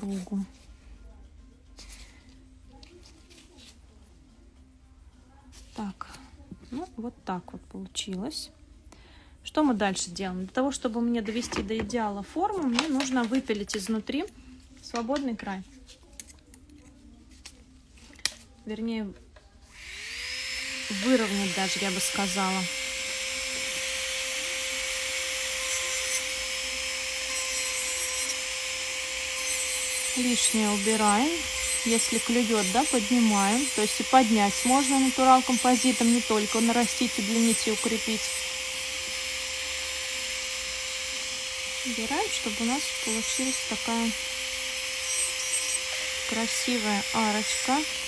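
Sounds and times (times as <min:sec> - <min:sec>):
electric nail drill whining: 0:19.7 - 0:48.0.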